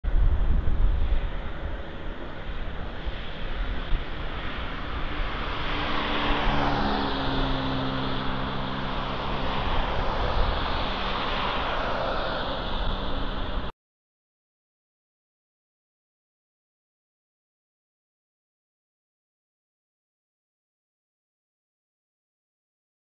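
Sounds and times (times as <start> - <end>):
rumble of passing vehicles: 0.1 - 13.7
engine humming: 1.2 - 13.7.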